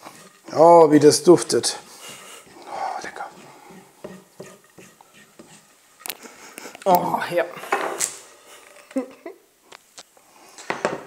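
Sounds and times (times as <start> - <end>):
spatula scraping a frying pan: 0.0 - 6.6.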